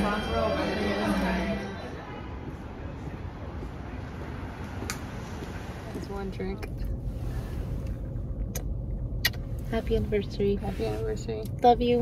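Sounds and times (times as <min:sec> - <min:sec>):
road rumble inside car: 0:00.0 - 0:12.0.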